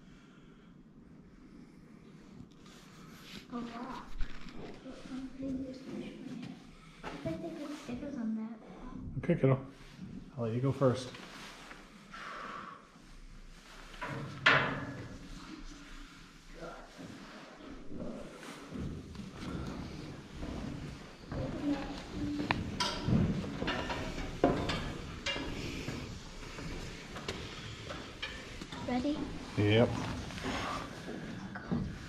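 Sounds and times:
footsteps on metal staircase: 16.9 - 32.0.

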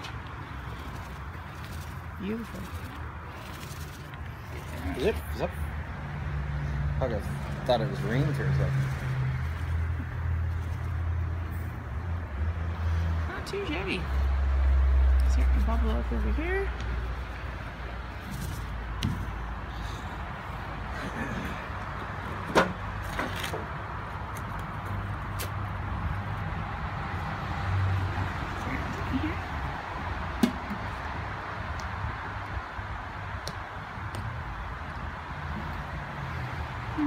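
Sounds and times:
outdoor background rumble: 0.0 - 37.0.

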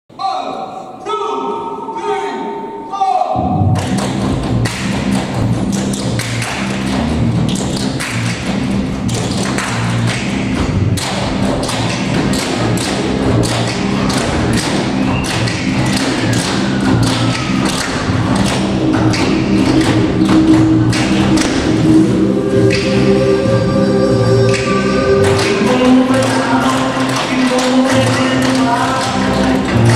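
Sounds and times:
music with steady bass beat: 3.4 - 29.9.

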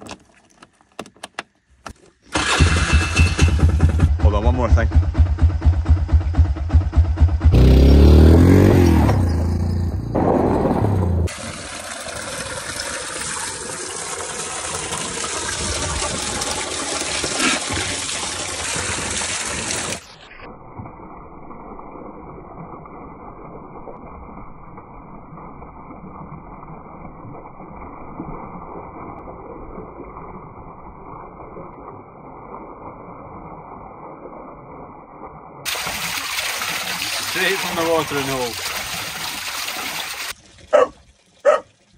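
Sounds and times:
quad bike engine pulsing: 2.3 - 11.3
water gushing into trough: 11.2 - 20.3, 35.6 - 41.9.

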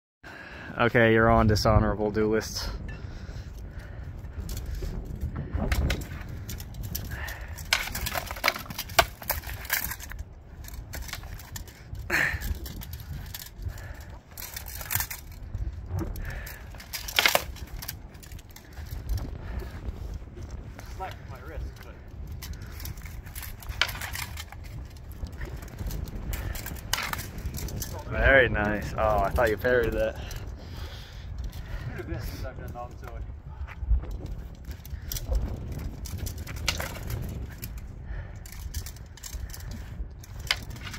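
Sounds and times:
wind rumble on microphone: 0.2 - 40.9.

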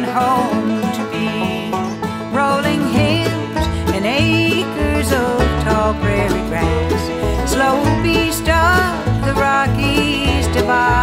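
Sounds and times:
bluegrass band plucked strings: 0.0 - 11.0
low bass notes: 2.0 - 11.0.

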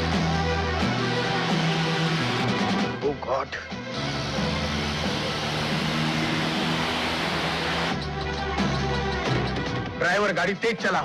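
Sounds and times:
cars driving on a road: 0.0 - 2.9, 3.8 - 9.9
dramatic film score: 0.0 - 11.0.

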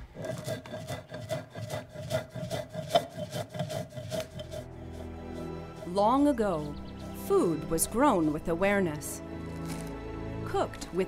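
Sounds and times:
stone grinding rasping strokes: 0.0 - 8.6.

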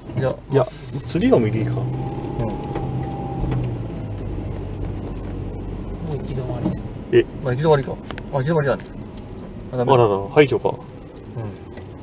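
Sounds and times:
car engine hum from inside: 0.0 - 12.0
road noise: 0.0 - 12.0.

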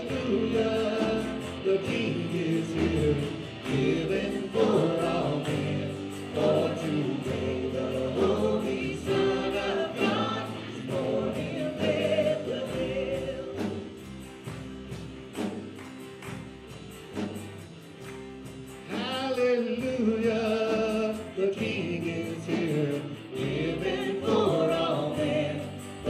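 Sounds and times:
man and woman singing together: 0.0 - 14.0, 18.9 - 26.0
acoustic guitar: 0.0 - 26.0
light percussion beat: 0.0 - 26.0.

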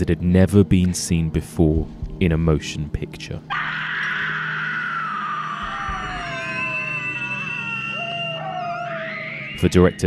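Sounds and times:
high-pitched sliding screaming tones: 3.5 - 10.0
steady high tone: 4.0 - 10.0.

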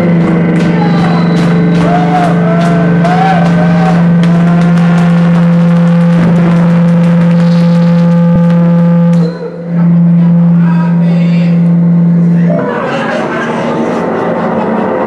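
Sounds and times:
loud low drone: 0.0 - 15.0
warbling looping higher tones: 0.0 - 15.0.

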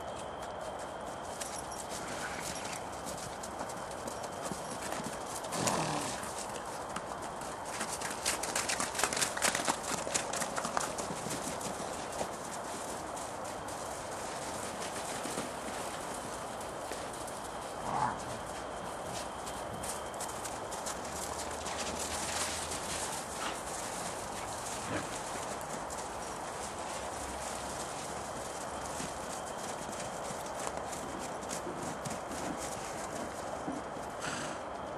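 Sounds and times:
hooves clip-clopping: 0.0 - 34.9.

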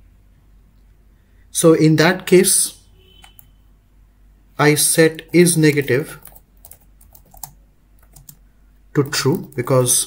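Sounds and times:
computer keyboard typing: 5.2 - 8.4, 9.0 - 10.0.

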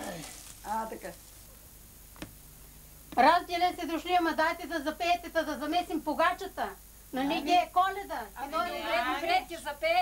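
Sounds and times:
dry straw rustling and crackling: 0.0 - 1.5
low room noise: 0.0 - 10.0.

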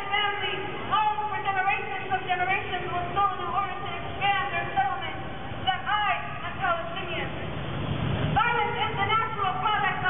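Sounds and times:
woman speaking with raised voice: 0.0 - 7.4, 8.4 - 10.0.

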